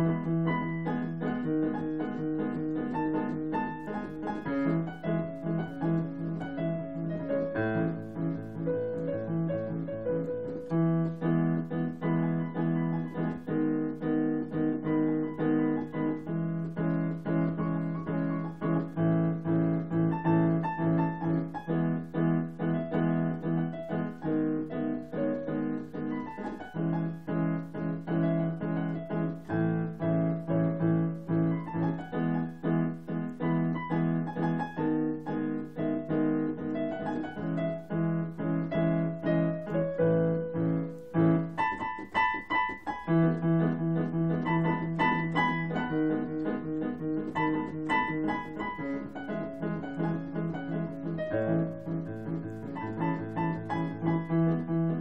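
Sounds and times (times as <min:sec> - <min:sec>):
solo piano chords: 0:00.0 - 0:55.0.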